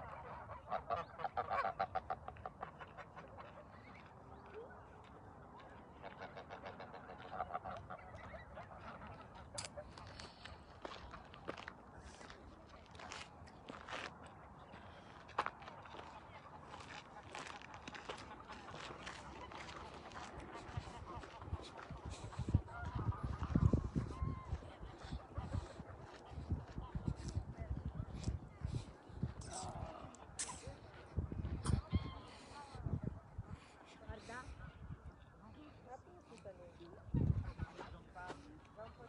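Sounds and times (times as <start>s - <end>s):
geese honking: 0.0s - 4.0s, 5.9s - 11.6s, 15.9s - 27.2s.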